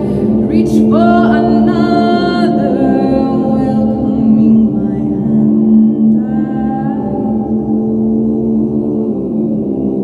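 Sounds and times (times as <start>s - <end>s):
woman singing a cappella: 0.4s - 7.7s.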